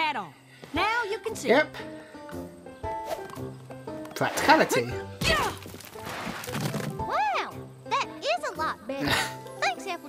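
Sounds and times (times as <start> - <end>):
gentle background music: 0.0 - 10.0.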